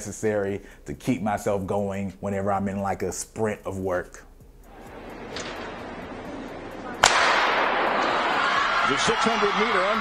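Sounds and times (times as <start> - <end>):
crowd noise in arena: 4.7 - 10.0
starter's pistol shot: 7.0 - 8.0.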